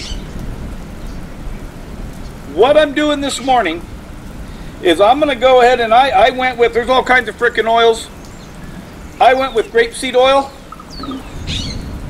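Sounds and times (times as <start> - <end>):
steady rain hiss: 0.0 - 12.0
low rolling thunder: 8.7 - 12.0.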